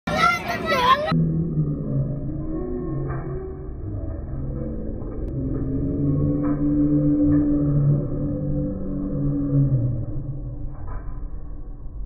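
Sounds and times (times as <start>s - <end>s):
muffled low drone: 1.1s - 12.0s.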